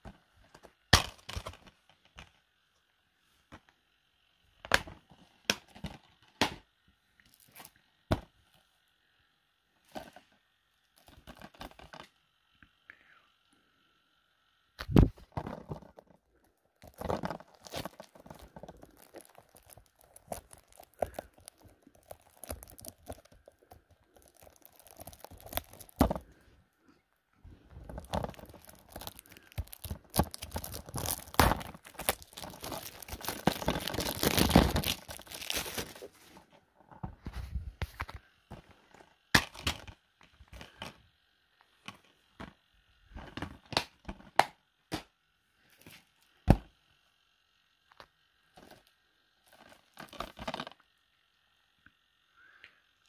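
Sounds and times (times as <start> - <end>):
plastic wrap crinkling: 15.3 - 26.4, 27.5 - 36.5.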